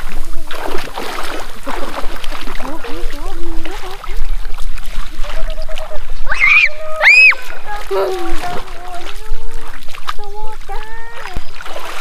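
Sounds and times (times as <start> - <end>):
water splashing: 0.0 - 12.0
children's voices: 2.6 - 4.4, 5.2 - 12.0.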